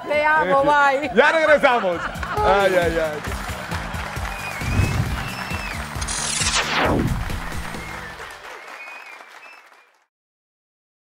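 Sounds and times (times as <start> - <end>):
tv bumper music with low beat: 4.4 - 8.2
falling whoosh sound effect: 4.6 - 8.0.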